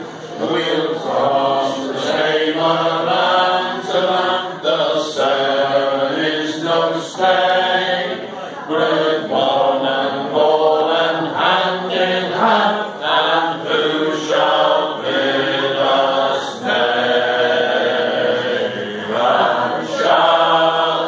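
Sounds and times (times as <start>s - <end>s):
men singing unaccompanied: 0.3s - 21.0s.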